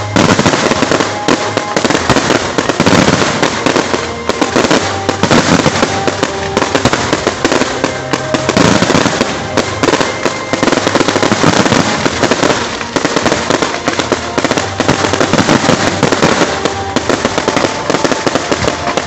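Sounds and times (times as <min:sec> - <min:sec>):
fireworks bursts and crackling: 0:00.0 - 0:19.0.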